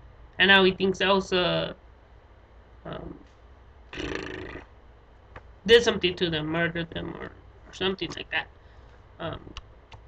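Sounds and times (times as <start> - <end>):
man breathing: 8.6 - 9.2.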